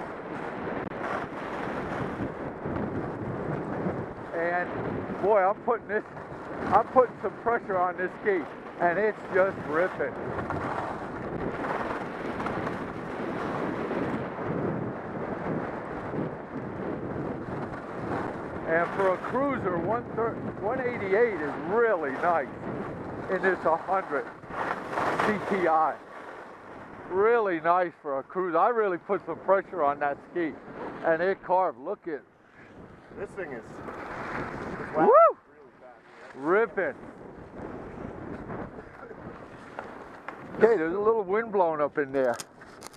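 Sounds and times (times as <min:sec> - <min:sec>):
wind rushing over microphone: 0:00.0 - 0:42.9
skis carving on snow: 0:06.0 - 0:14.2, 0:15.2 - 0:19.4, 0:20.9 - 0:26.5, 0:33.3 - 0:35.1.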